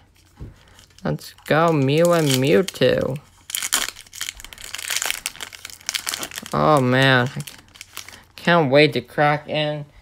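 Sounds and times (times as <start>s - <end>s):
foil wrapper crinkling: 0.1s - 8.4s.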